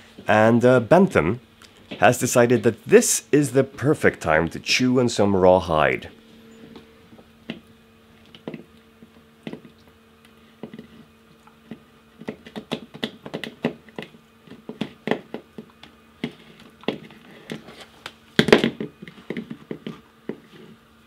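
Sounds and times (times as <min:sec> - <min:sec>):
dog chewing rawhide: 0:08.2 - 0:17.9.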